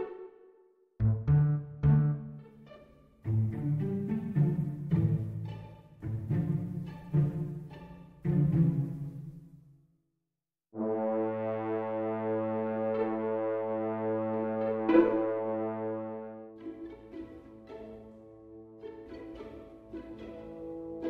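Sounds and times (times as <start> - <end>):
string passage: 0.0 - 9.6, 10.8 - 21.0.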